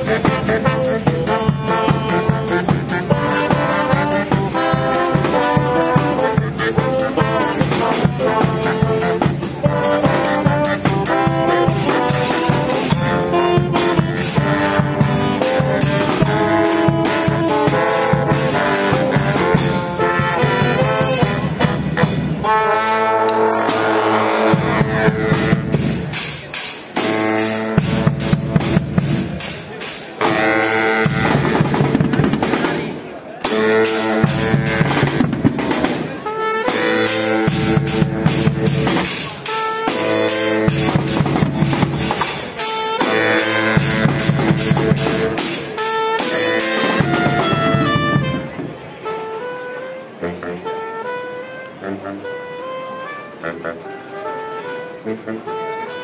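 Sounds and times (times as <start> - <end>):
steady drum beat: 0.0 - 22.4, 23.7 - 48.5
brass horns playing: 0.0 - 56.0.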